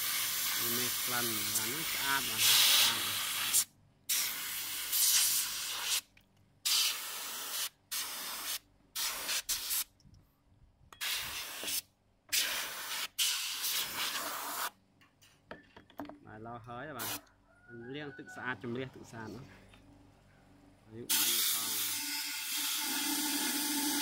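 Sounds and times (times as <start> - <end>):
spray gun hissing: 0.0 - 6.0, 6.7 - 9.8, 11.0 - 14.7, 17.0 - 17.2, 21.1 - 24.0.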